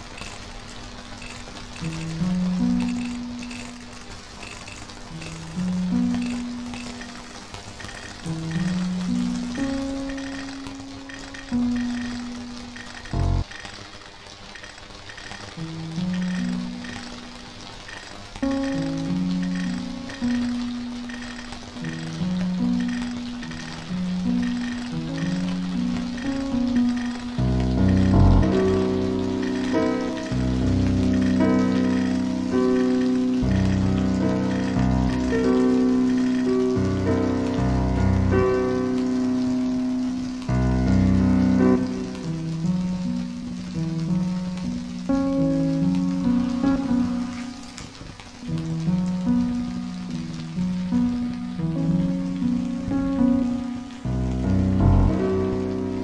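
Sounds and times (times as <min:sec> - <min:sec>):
faint high ticking: 0:00.0 - 0:56.0.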